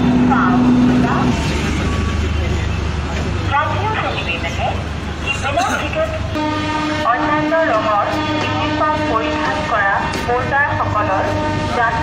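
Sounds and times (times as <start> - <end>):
people's voices: 0.0 - 6.4
diesel train engine humming: 0.0 - 12.0
train horn: 6.3 - 10.1, 11.0 - 12.0.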